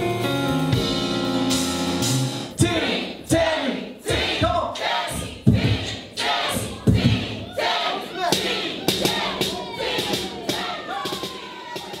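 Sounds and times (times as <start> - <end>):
live concert music: 0.0 - 3.4
crowd voices: 4.1 - 12.0.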